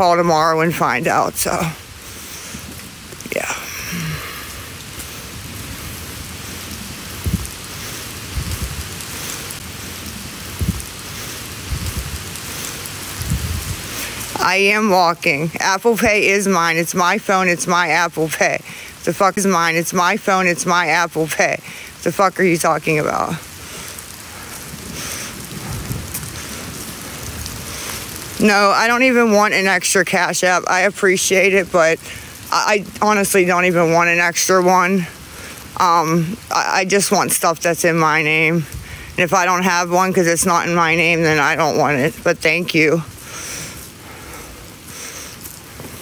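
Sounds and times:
rain hissing on microphone: 0.0s - 46.0s
low thumps: 7.2s - 7.6s, 10.5s - 10.9s.

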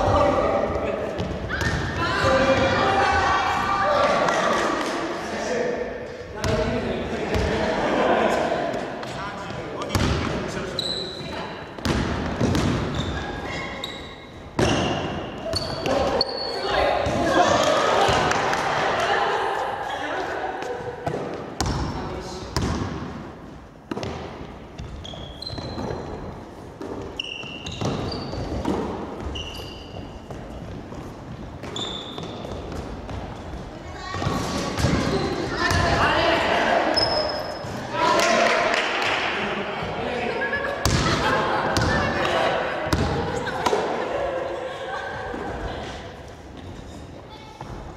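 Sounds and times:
players' voices: 0.0s - 23.1s, 32.2s - 47.9s
sneaker squeaks: 1.1s - 2.3s, 9.8s - 18.2s, 24.8s - 36.0s, 36.9s - 37.9s, 46.4s - 47.9s
basketball bouncing on wood floor: 11.8s - 13.0s.

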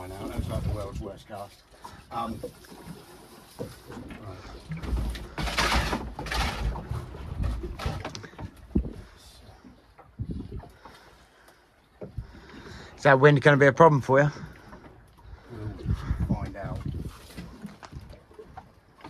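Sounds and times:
wind buffeting microphone: 0.1s - 1.2s, 10.1s - 10.8s, 15.2s - 18.5s.

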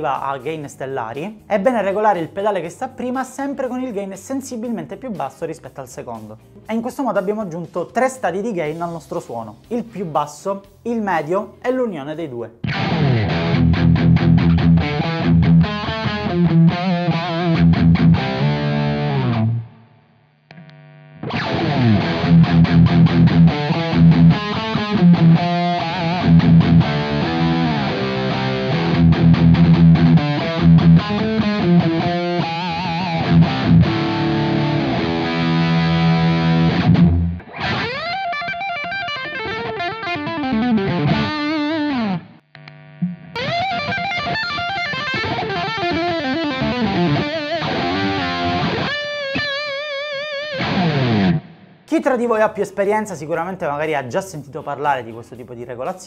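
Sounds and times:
distorted electric guitar: 12.6s - 53.1s.

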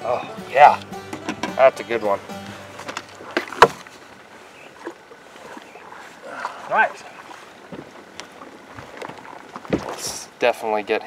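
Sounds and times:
knocks on boat: 1.0s - 1.8s, 2.8s - 3.9s, 7.7s - 8.0s, 8.7s - 10.1s.

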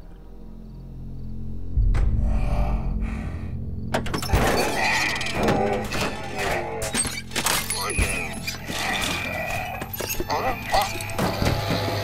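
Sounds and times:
cinematic score: 0.0s - 12.0s
deep low boom: 1.5s - 4.5s.

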